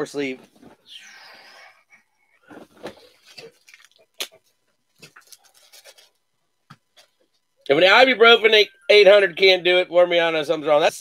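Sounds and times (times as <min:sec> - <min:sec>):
breathy hiss: 0:00.8 - 0:02.7
cards and plastic sleeves rustling: 0:02.4 - 0:07.3.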